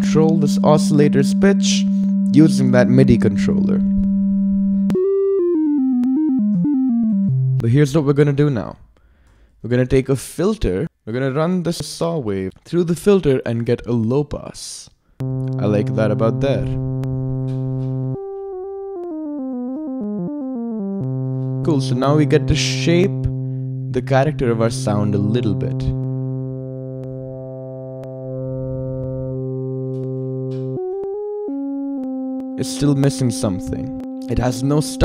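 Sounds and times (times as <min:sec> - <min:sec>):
sawtooth synthesizer notes: 0:00.0 - 0:07.7, 0:15.2 - 0:35.0.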